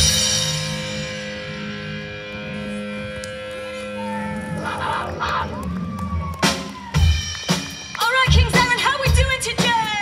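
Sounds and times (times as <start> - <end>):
rock band playing sustained chords: 0.0 - 10.0.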